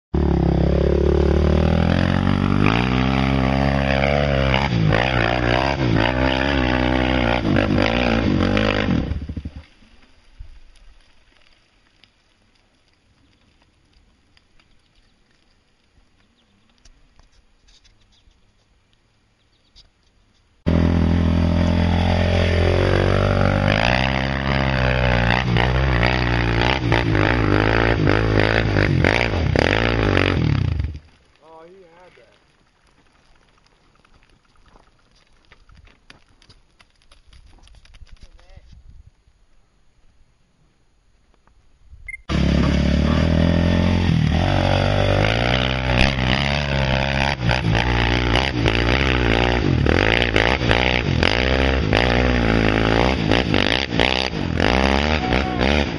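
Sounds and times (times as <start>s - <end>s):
quad engine revving: 0.2s - 9.6s, 20.7s - 31.0s, 42.3s - 55.9s.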